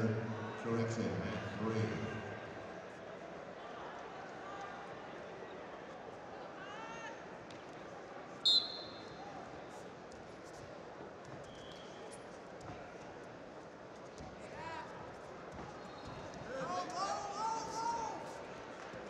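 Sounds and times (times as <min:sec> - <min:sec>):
referee whistle blast: 0:08.4 - 0:09.2.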